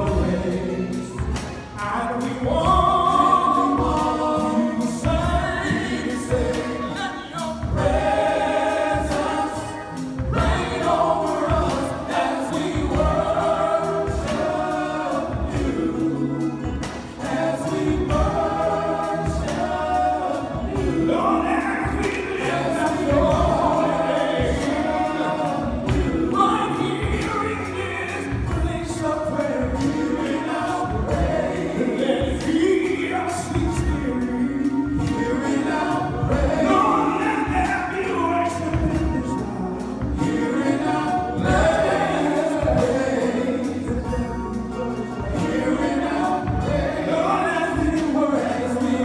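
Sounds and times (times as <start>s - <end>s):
male vocal group singing: 0.0s - 49.0s.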